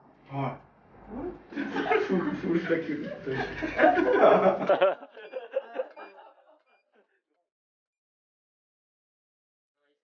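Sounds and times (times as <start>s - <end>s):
people talking: 0.3s - 6.2s
people laughing: 1.5s - 6.8s.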